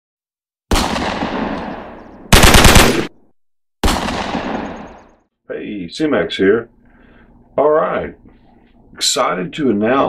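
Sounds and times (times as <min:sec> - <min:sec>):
heavy gunshot ringing out: 0:00.7 - 0:03.1, 0:03.8 - 0:05.0
rapid automatic gunfire: 0:02.3 - 0:03.1.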